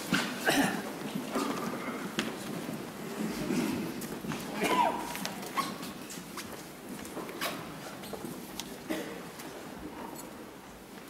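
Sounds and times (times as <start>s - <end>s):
footsteps: 0.0s - 11.0s
shuffling: 0.0s - 11.0s.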